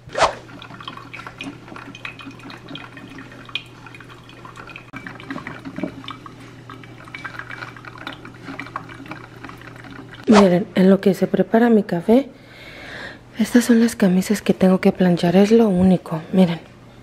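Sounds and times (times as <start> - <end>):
coffee dripping into carafe: 0.4 - 10.3
coffee maker ticks and sputters: 0.5 - 10.3.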